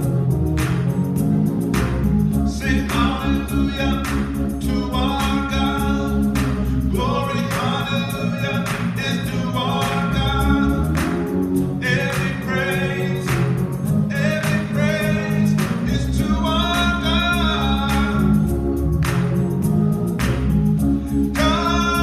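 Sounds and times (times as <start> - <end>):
held accompaniment chords: 0.0 - 22.0
person singing gospel: 2.2 - 19.7, 20.8 - 22.0.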